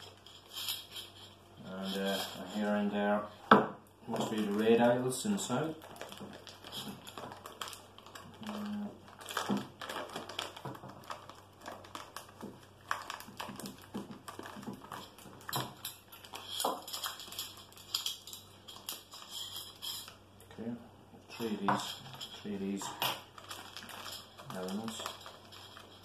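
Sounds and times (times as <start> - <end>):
plastic rustling: 0.0 - 20.2, 21.3 - 26.0.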